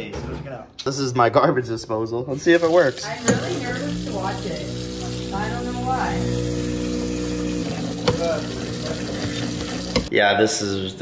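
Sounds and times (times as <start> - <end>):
garbage disposal motor hum: 2.3 - 10.1
tap water running into sink: 2.3 - 10.1.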